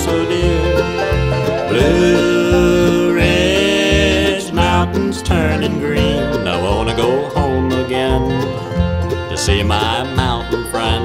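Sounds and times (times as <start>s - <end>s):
banjo: 0.0s - 11.0s
bluegrass band playing: 0.0s - 11.0s
steady bass line: 0.0s - 11.0s.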